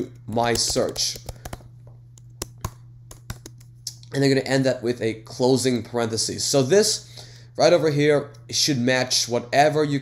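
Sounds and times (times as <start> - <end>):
computer keyboard clicks: 0.3 - 3.7.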